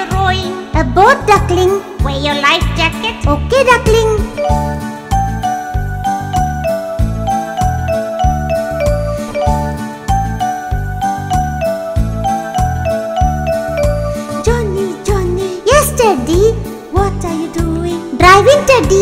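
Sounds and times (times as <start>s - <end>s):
bell-like melody: 4.3s - 14.7s.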